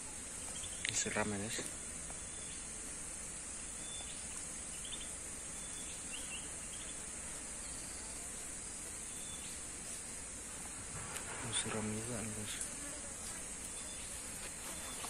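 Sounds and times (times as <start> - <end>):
high-pitched insect chorus: 0.0 - 15.0.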